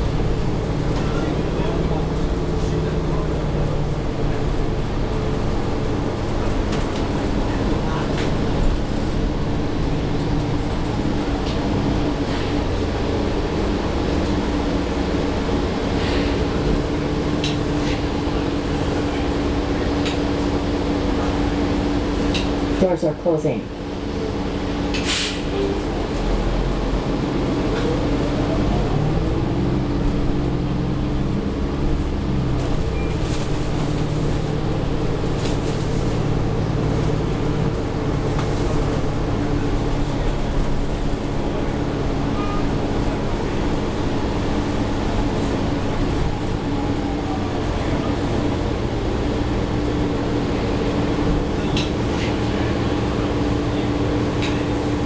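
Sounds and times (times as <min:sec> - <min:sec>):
bus drivetrain rumbling: 0:00.0 - 0:55.0.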